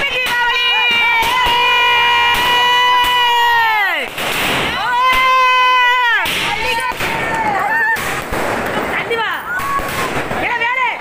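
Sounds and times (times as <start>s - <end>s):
fireworks fountain whistling: 0.0s - 10.6s.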